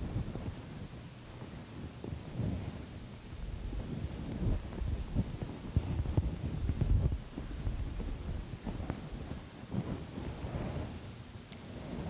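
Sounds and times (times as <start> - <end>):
low thumps and rumbling: 3.4 - 10.8.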